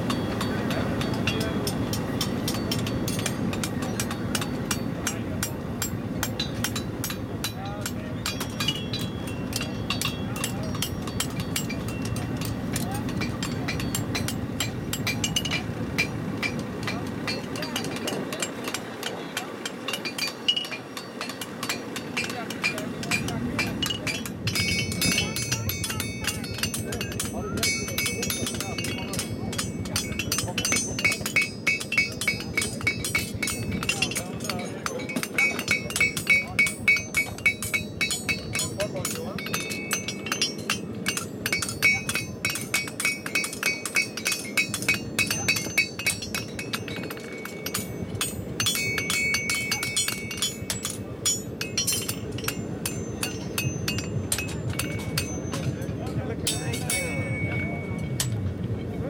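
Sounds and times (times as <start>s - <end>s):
hammer blows on anvils: 0.0s - 58.5s.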